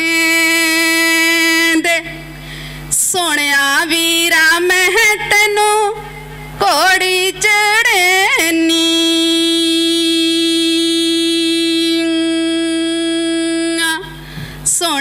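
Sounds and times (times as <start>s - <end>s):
woman singing a folk song: 0.0s - 2.3s, 2.9s - 15.0s
singer breathing: 2.3s - 3.0s, 14.1s - 14.7s.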